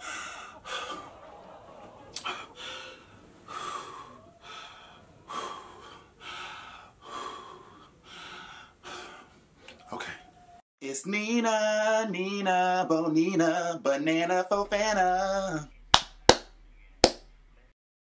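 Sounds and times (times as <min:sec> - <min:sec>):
person gasping for breath: 0:02.2 - 0:09.4.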